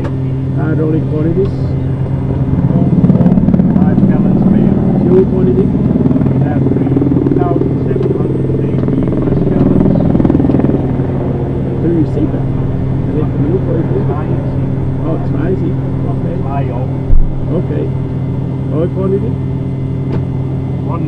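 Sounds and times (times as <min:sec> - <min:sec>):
low machine hum: 0:00.0 - 0:21.0.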